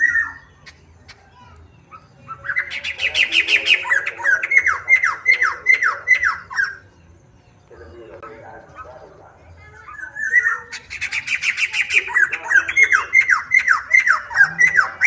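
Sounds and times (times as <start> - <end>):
bird song of falling whistled notes: 0.0 - 0.9, 10.0 - 15.0.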